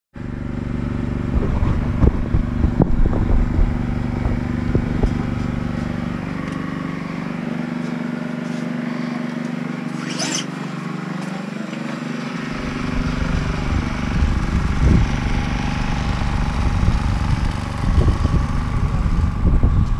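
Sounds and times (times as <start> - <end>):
low mechanical hum: 0.2 - 19.9.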